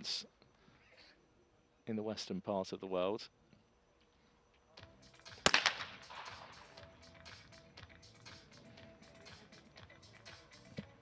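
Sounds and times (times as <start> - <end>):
shotgun shot with echo: 5.4 - 6.8.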